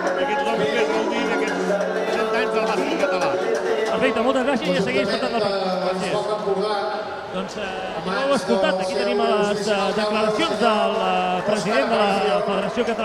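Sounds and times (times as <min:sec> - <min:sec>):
people talking at once: 0:00.0 - 0:13.0.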